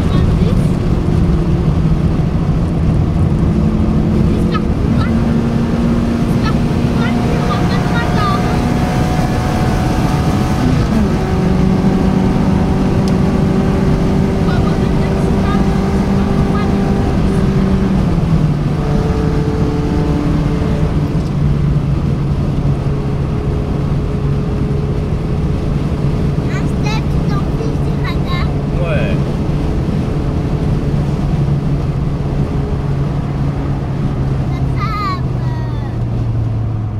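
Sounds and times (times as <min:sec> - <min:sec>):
car engine cruising: 0:00.0 - 0:36.9.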